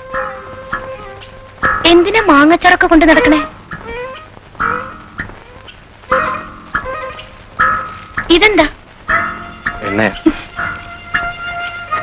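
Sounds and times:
film score held notes: 0:00.0 - 0:12.0.

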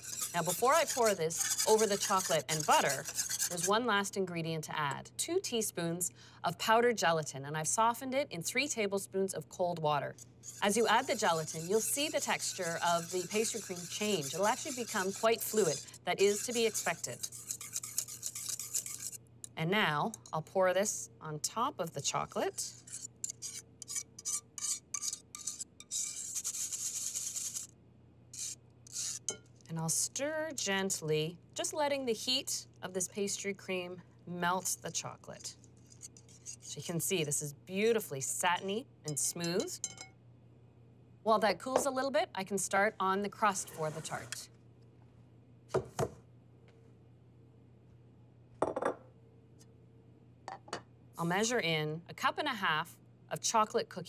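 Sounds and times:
cream scraped through metal sieve: 0:00.0 - 0:03.8, 0:10.4 - 0:19.2, 0:22.0 - 0:27.7, 0:43.6 - 0:44.4
knocks on wooden countertop: 0:45.8 - 0:46.2.

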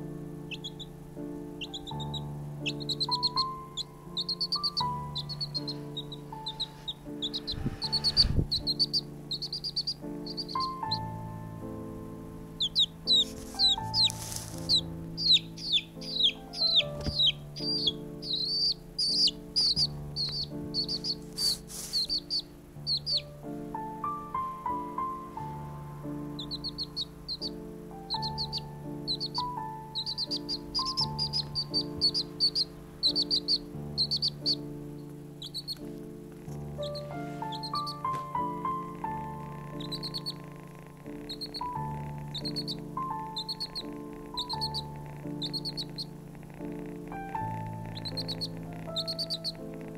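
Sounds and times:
chick peeping: 0:00.0 - 0:11.3, 0:12.4 - 0:49.9
soft background music: 0:00.0 - 0:49.9.

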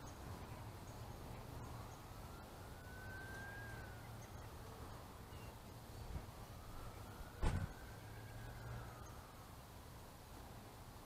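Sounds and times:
distant siren wailing: 0:00.0 - 0:09.9.

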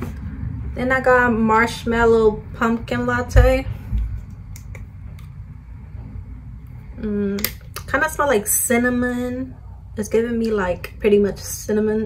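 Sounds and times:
low handling rumble: 0:00.0 - 0:07.6.

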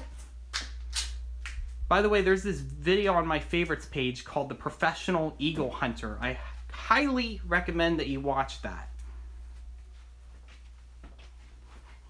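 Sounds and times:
steady low hum: 0:00.0 - 0:12.0
man talking: 0:01.9 - 0:09.0.

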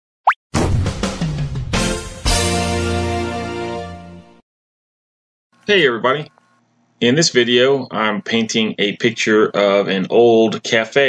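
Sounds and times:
playful music jingle: 0:01.1 - 0:04.3.

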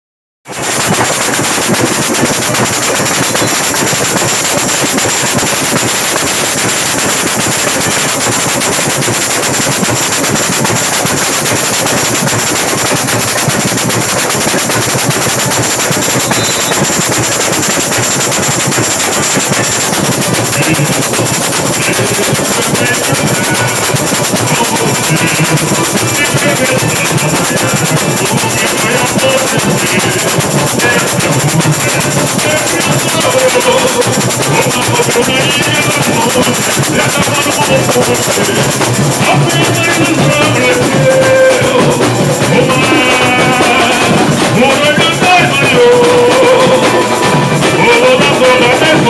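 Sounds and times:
samba drum band playing: 0:00.4 - 0:49.0
bass drums: 0:00.5 - 0:49.0
jingle shakers ringing: 0:00.6 - 0:48.8.

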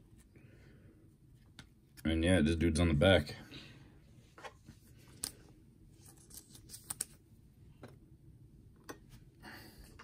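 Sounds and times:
cards clicking and scraping: 0:04.4 - 0:07.2.

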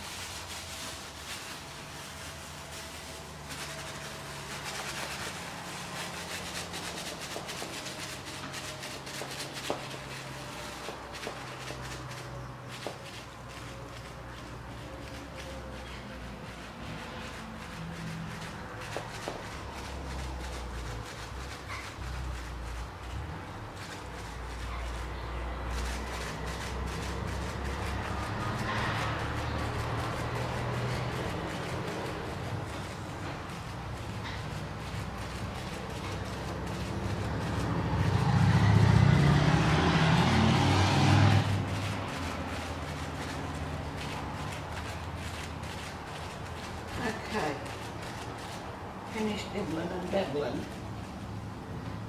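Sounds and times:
plastic bag patting on paint: 0:00.0 - 0:51.2
motor vehicle passing: 0:00.0 - 0:52.0.

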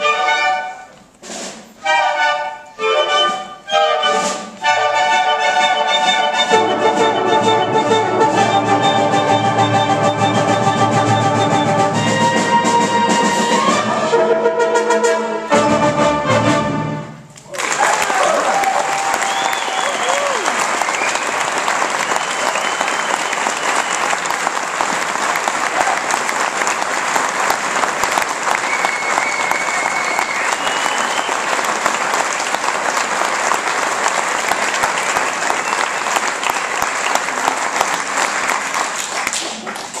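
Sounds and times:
audience applauding: 0:17.4 - 0:40.0
shouted cheers: 0:17.5 - 0:24.2.

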